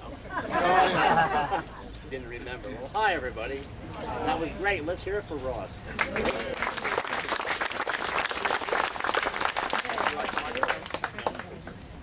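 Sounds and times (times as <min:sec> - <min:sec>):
crowd applauding: 0:05.9 - 0:11.6.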